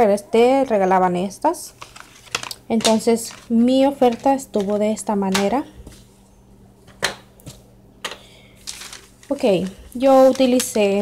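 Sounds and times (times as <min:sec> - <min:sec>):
paper receipt rustling: 0:01.6 - 0:06.1, 0:08.2 - 0:11.0.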